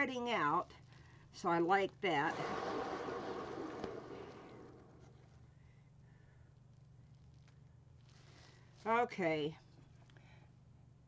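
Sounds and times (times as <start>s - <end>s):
turntable bearing whirring: 2.3s - 5.2s.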